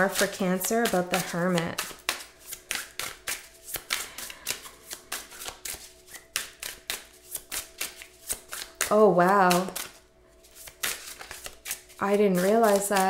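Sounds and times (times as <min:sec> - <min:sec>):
cards being shuffled: 0:00.0 - 0:13.0.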